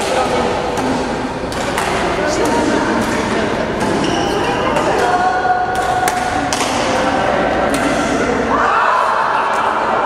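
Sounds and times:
racket striking shuttlecock: 0.0 - 8.3
voices in a hall: 0.0 - 10.0.

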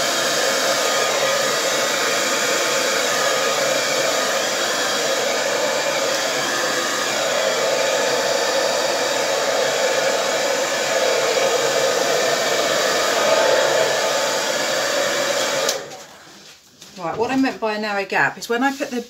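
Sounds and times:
hairdryer blowing: 0.0 - 16.3.

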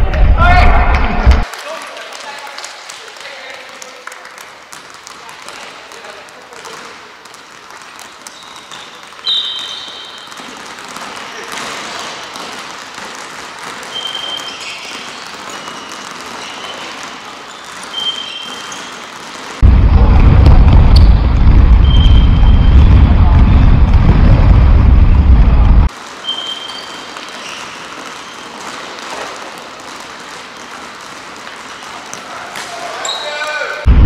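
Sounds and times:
sneakers squeaking on floor: 6.6 - 19.6, 26.0 - 33.6
low rumble on microphone: 19.6 - 25.9.

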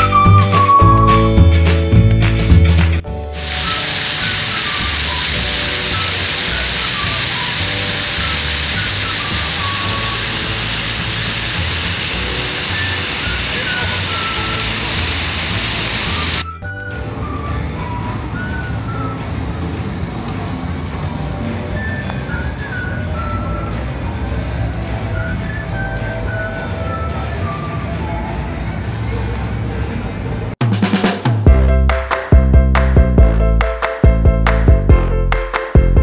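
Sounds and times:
music: 0.0 - 36.0
outdoor ambience: 3.2 - 16.6
fountain water jets splashing: 3.3 - 16.4.

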